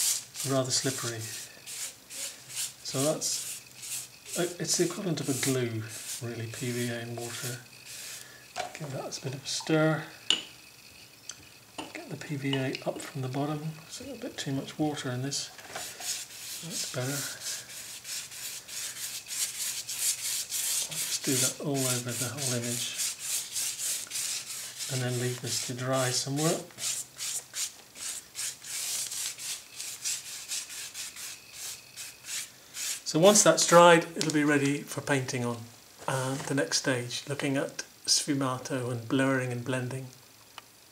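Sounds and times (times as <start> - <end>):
brush stirring glue: 0.0 - 9.8, 15.8 - 33.1
brush clinking against container: 0.4 - 7.6.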